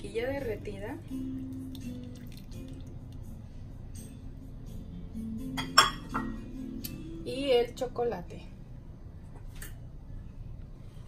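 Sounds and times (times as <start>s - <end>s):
soft background music: 0.0s - 11.0s
glass bowl clink: 5.5s - 6.4s.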